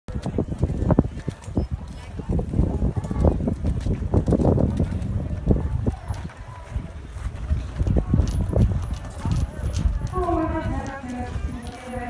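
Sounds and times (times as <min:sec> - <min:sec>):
people's voices: 0:00.1 - 0:12.0.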